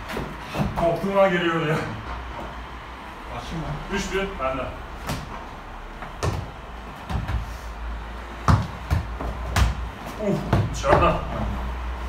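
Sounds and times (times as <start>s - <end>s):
ball thudding on gym floor: 5.0s - 5.4s, 6.0s - 7.5s, 8.4s - 11.3s.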